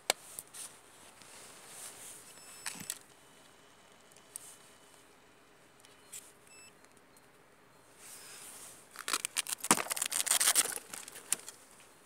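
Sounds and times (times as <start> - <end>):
short high beep: 6.0 - 6.8
rapid crackling and scratching: 8.9 - 11.6.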